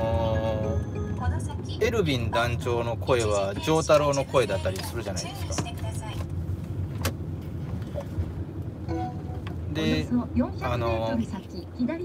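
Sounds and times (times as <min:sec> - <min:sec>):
car road and engine rumble: 0:00.0 - 0:12.0.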